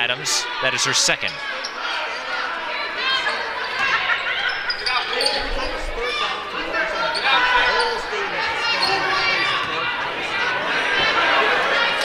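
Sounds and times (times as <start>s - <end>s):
voices echoing in a gym: 0.0s - 12.0s
sneakers squeaking: 1.2s - 10.0s.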